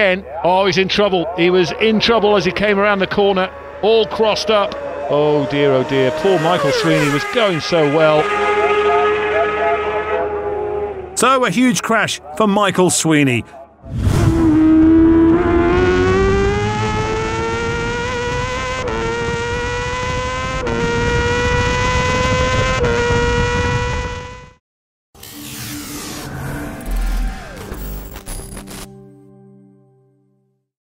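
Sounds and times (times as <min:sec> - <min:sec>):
racing motorcycle engine accelerating: 0:01.7 - 0:11.2, 0:14.0 - 0:24.6.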